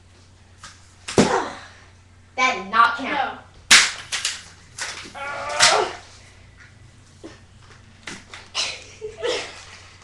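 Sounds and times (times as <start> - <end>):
person yelling: 5.2 - 6.0.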